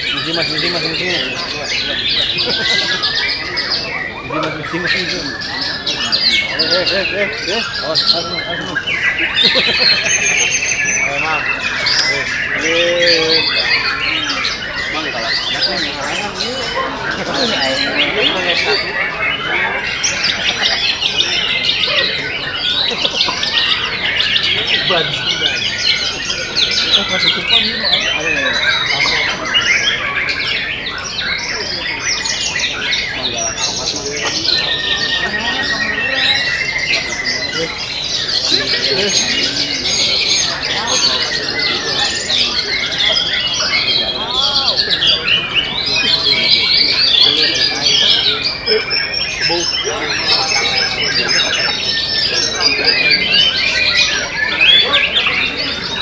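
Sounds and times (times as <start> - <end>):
chorus of songbirds singing: 0.0 - 56.0.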